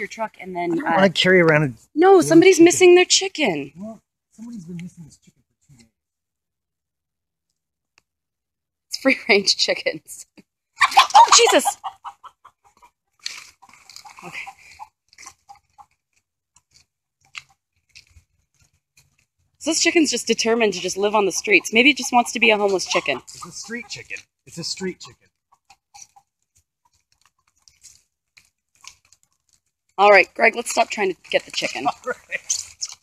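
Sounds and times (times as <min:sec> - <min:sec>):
chicken clucking: 0:10.8 - 0:16.0, 0:20.7 - 0:27.8
footsteps on wet leaves: 0:13.2 - 0:19.3, 0:30.6 - 0:33.0.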